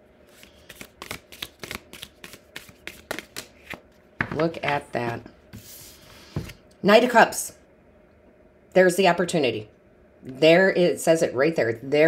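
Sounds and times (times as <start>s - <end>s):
cards being shuffled: 0.3s - 6.6s.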